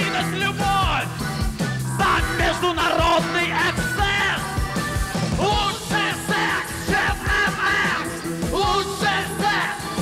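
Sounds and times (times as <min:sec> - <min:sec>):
singer shouting vocals: 0:00.0 - 0:01.2, 0:01.9 - 0:04.6, 0:05.4 - 0:10.0
drum beat: 0:00.0 - 0:10.0
rock band playing: 0:00.0 - 0:10.0.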